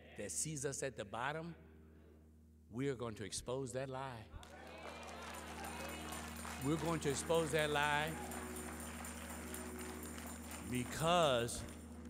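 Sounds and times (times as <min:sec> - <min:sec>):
held keyboard chord: 0:05.2 - 0:12.0
man preaching: 0:06.6 - 0:08.4, 0:10.7 - 0:11.7.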